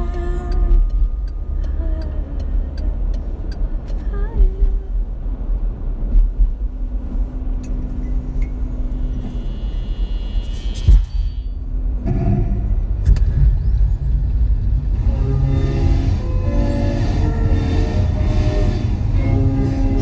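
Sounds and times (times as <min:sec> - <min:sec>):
car road and engine rumble: 0:00.0 - 0:20.0
music: 0:15.0 - 0:20.0.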